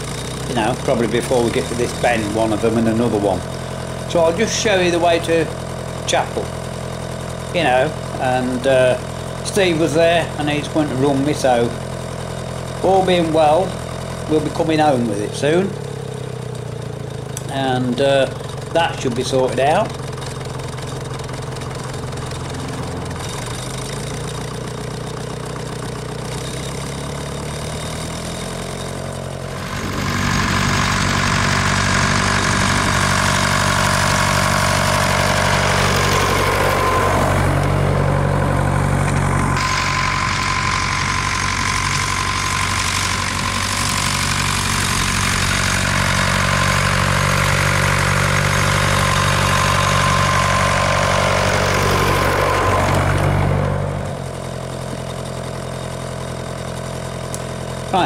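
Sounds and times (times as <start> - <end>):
tractor engine running: 0.0 - 58.0.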